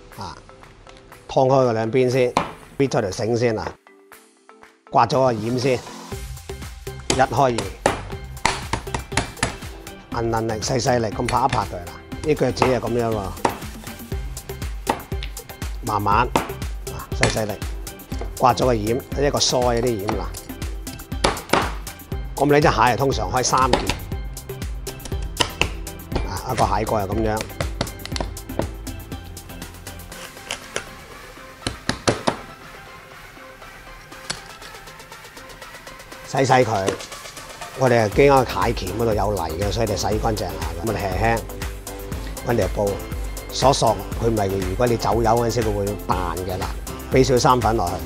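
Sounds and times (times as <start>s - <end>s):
background music: 0.0s - 48.0s
cleaver chopping crab on board: 7.1s - 9.7s, 13.4s - 13.7s, 14.8s - 15.2s, 21.2s - 21.8s.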